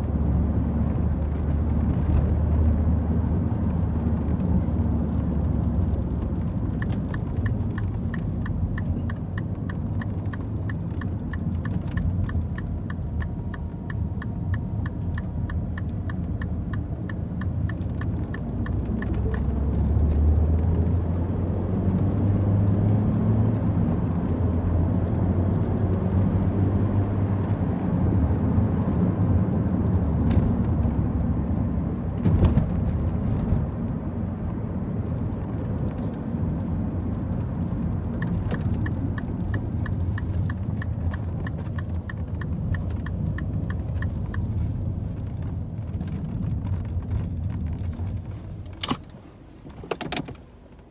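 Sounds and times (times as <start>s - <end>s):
car engine and road noise: 0.0s - 50.9s
turn signal ticking: 3.3s - 21.7s, 34.4s - 49.2s.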